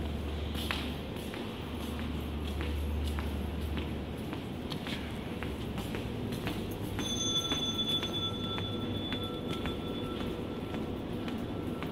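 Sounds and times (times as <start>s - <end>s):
footsteps on tiled floor: 0.0s - 11.9s
low hum of air handling: 0.0s - 11.9s.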